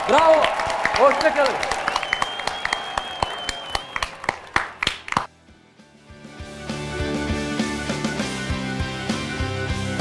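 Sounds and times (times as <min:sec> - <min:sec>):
small group clapping: 0:00.0 - 0:05.3.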